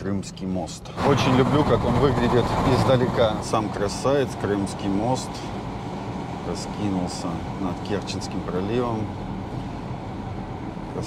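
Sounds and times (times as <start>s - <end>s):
car road and tyre noise: 0.0s - 11.0s.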